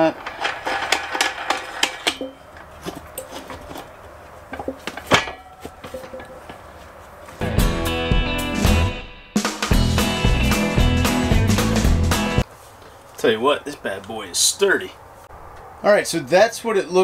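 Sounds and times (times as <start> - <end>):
loud guitar music: 7.4 - 12.4.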